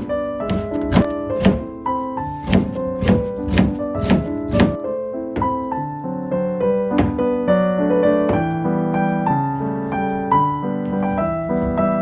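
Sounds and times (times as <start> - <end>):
knife chopping onion on board: 0.0 - 1.7, 2.4 - 4.8
background music: 0.0 - 12.0.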